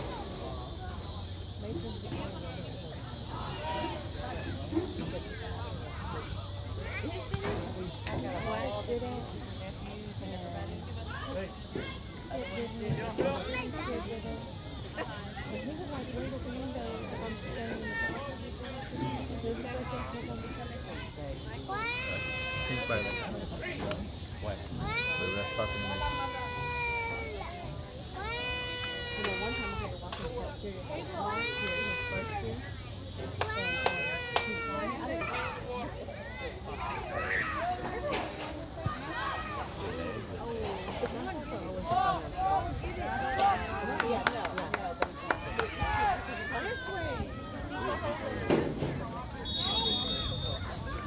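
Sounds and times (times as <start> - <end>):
people talking indistinctly: 0.0 - 51.0.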